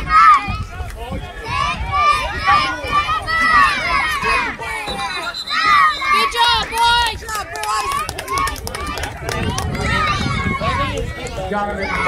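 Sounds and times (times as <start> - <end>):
children and spectators chattering: 0.0 - 12.0
sharp claps: 6.6 - 12.0.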